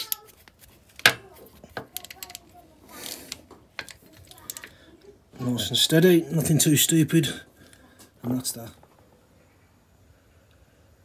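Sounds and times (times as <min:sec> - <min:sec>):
socket ratchet clicking: 0:01.9 - 0:02.4.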